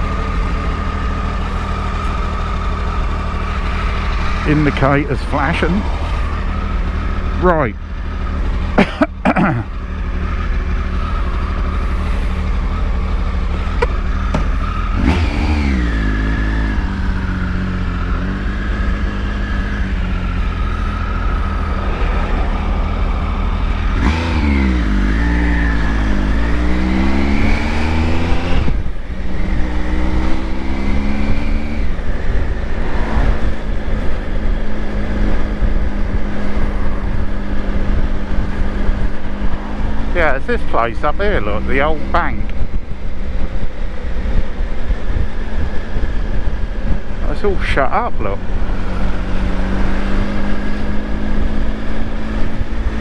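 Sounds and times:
motorcycle engine accelerating: 0.0s - 53.0s
wind and road noise: 0.0s - 53.0s.

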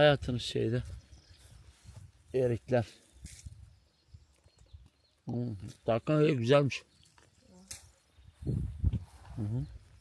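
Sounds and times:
footsteps through grass: 0.0s - 6.1s, 6.9s - 10.0s.

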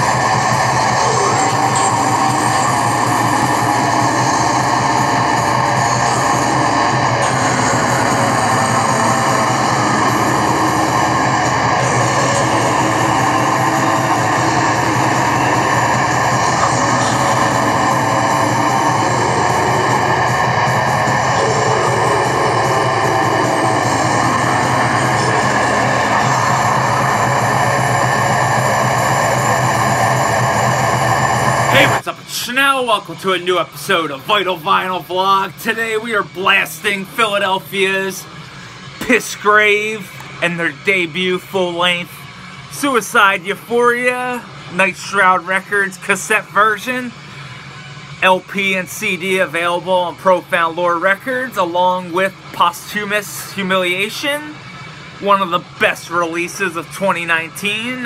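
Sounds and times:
heavy distorted metal music: 0.0s - 58.0s.

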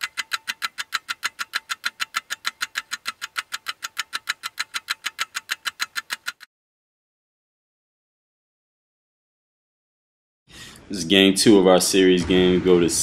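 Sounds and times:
rapid even ticking: 0.0s - 6.5s.

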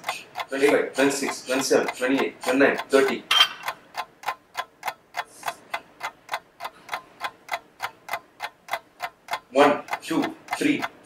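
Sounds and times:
steady ticking clicks: 0.0s - 11.0s.

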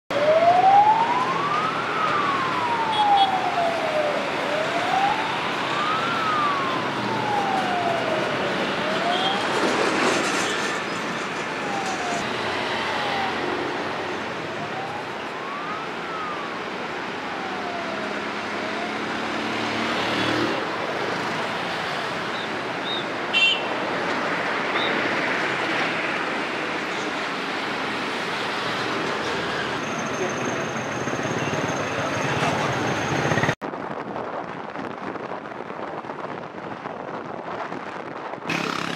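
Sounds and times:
siren wailing: 0.1s - 10.8s, 11.4s - 22.1s
road traffic noise: 0.1s - 38.9s.

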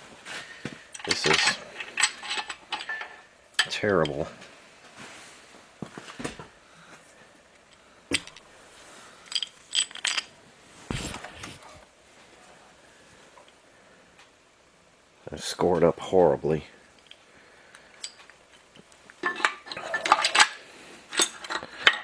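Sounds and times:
metal clicks and clinks: 0.9s - 4.2s, 19.2s - 22.0s.

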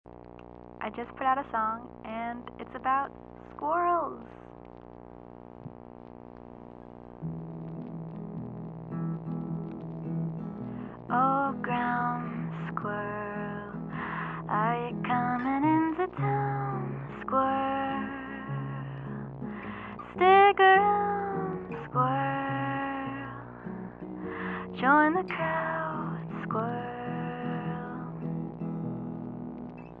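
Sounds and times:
sustained guitar drone: 0.4s - 30.0s
fingerpicked guitar notes: 5.6s - 30.0s
low repeating bass line: 7.1s - 12.4s.

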